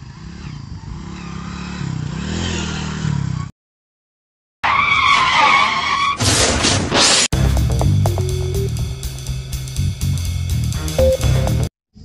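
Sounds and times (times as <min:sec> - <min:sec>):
motorcycle crash scraping: 0:05.1 - 0:07.3.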